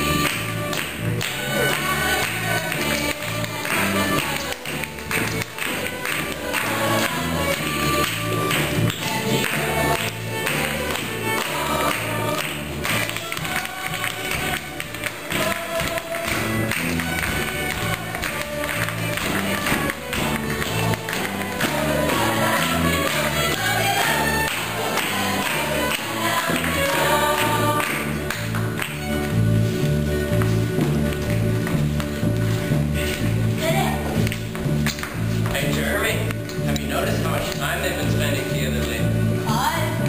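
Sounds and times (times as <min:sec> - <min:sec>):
people clapping in time: 0:00.0 - 0:39.0
fiddle: 0:00.0 - 0:40.0
live folk music: 0:00.0 - 0:40.0.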